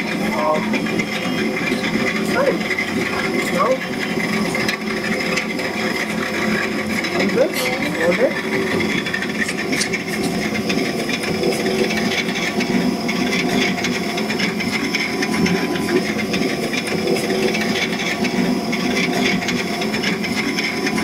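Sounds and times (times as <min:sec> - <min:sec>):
potter's wheel running: 0:00.0 - 0:21.0.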